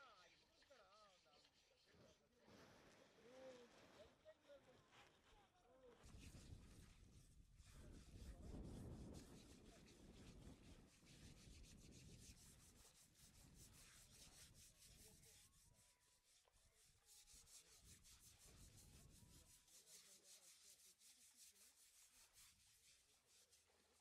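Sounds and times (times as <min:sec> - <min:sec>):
hand scrubbing wet hide: 0:07.6 - 0:24.0.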